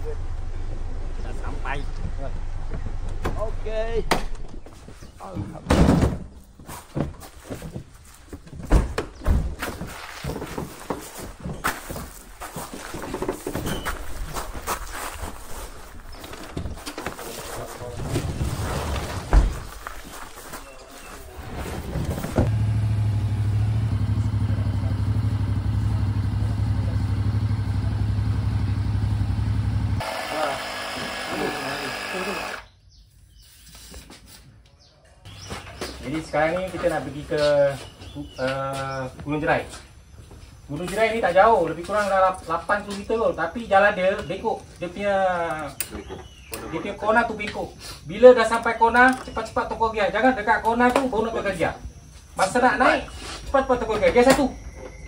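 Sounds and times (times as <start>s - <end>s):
voices: 23.3s - 32.6s, 35.9s - 39.9s, 40.7s - 54.9s
air compressor humming: 25.6s - 32.7s.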